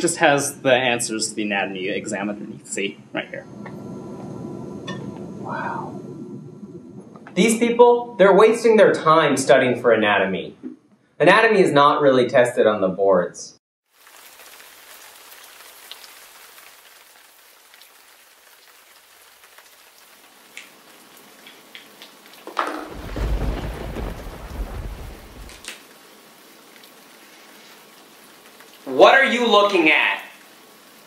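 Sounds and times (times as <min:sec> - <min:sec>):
steady rain: 0:00.0 - 0:07.7, 0:13.9 - 0:31.0
thunder rumbling: 0:03.2 - 0:07.7, 0:22.6 - 0:25.7.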